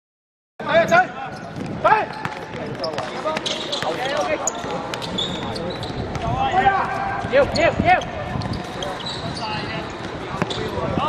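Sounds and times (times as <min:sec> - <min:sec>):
ball kicked and bouncing on court: 0:01.4 - 0:07.6, 0:10.0 - 0:10.7.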